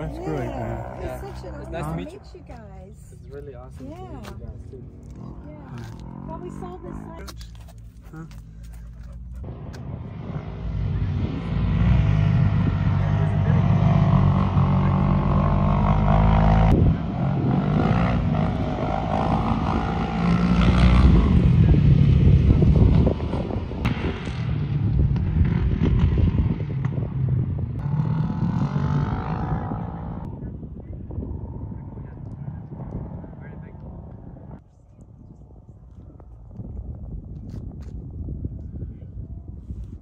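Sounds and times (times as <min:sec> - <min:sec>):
utv engines revving: 0:00.0 - 0:34.6.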